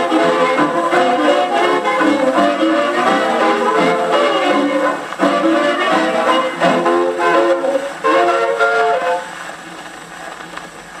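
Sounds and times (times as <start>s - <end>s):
jazz band with horns: 0.0s - 9.5s
record surface hiss and crackle: 0.0s - 11.0s.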